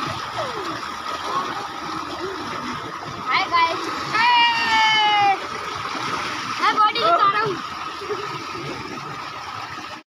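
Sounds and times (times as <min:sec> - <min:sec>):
water pouring into a tank: 0:00.0 - 0:10.0.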